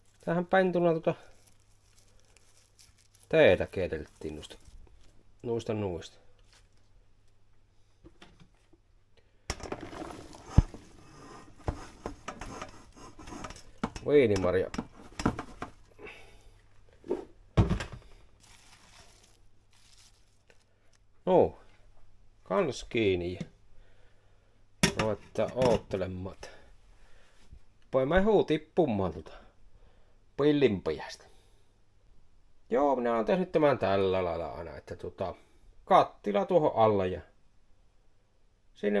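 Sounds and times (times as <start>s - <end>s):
handling and rustling: 0.0s - 5.4s, 6.3s - 7.0s, 9.6s - 16.0s, 16.6s - 21.0s.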